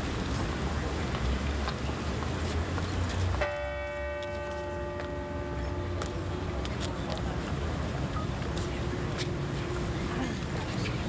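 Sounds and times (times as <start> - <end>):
crowd noise: 0.0 - 11.0
large church bell ringing: 3.4 - 6.8.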